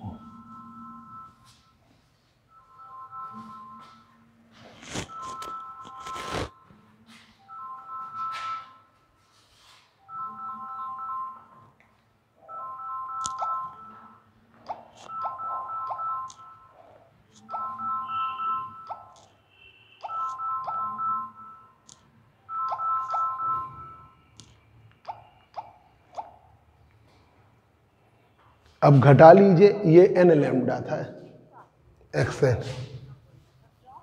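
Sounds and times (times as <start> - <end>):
electronic ringtone tune: 0.0 - 1.8, 2.5 - 4.3, 5.1 - 6.7, 7.4 - 9.0, 10.0 - 11.8, 12.4 - 19.3, 20.0 - 24.3.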